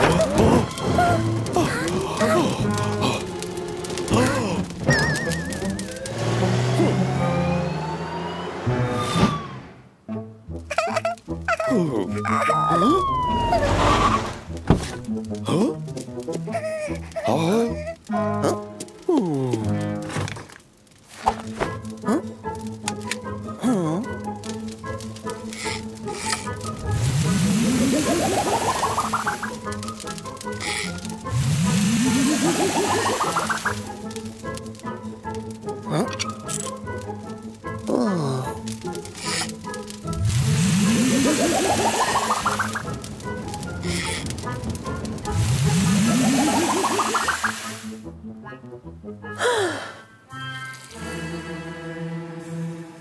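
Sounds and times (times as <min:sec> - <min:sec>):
light background music: 0:00.0 - 0:09.4, 0:10.0 - 0:53.0
falling glide sound effect: 0:04.9 - 0:09.9, 0:12.1 - 0:14.6, 0:26.8 - 0:29.6, 0:31.3 - 0:34.0, 0:40.2 - 0:42.9, 0:45.3 - 0:48.0
pulsing tone rising in pitch: 0:07.0 - 0:09.6
fire hose spraying hiss: 0:24.8 - 0:34.6, 0:38.5 - 0:48.0.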